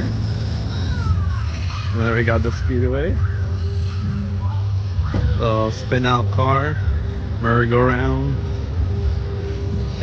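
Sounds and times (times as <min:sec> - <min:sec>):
fairground machinery drone: 0:00.0 - 0:10.0.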